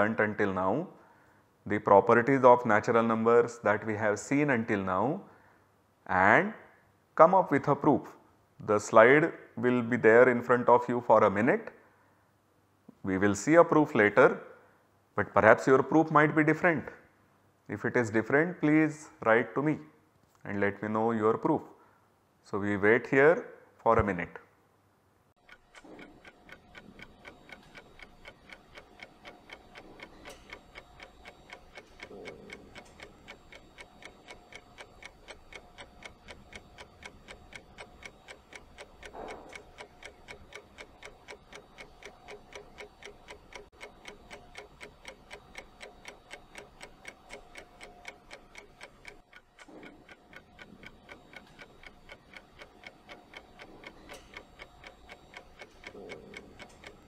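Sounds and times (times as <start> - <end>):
clock ticking: 25.4 - 57.0.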